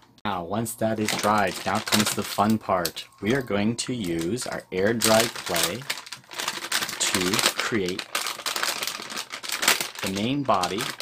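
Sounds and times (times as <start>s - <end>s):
plastic bag crinkling: 0.5s - 11.0s.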